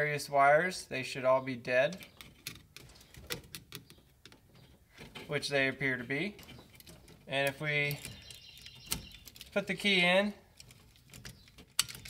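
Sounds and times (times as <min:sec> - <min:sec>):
probe clicking on metal terminals: 0:06.3 - 0:12.0.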